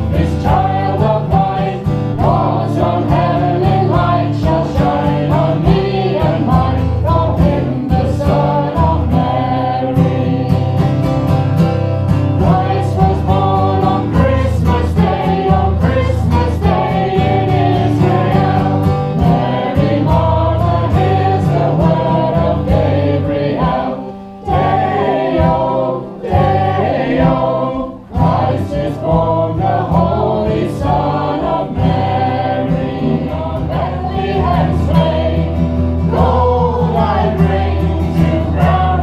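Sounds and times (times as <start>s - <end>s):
choir singing a carol: 0.0s - 39.0s
instrumental accompaniment: 0.0s - 39.0s.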